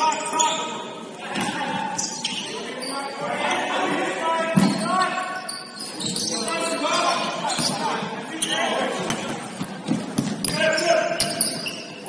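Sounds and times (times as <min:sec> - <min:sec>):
sneakers squeaking: 0:00.0 - 0:12.0.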